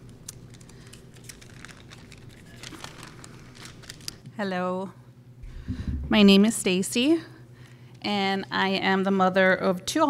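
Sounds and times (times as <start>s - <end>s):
paper handling clicks and rustles: 0.0s - 4.3s
faint room hum: 0.0s - 10.0s.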